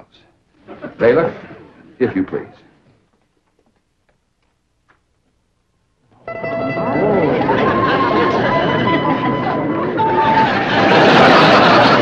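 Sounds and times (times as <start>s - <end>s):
faint irregular clicks: 2.8s - 5.4s.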